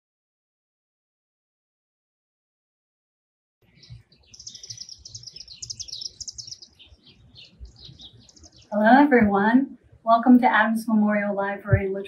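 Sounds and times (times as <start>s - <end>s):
small birds chirping: 3.6s - 10.0s.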